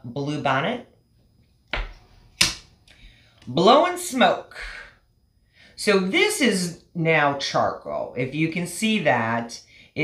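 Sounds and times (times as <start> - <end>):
knock on a table: 1.7 - 2.0.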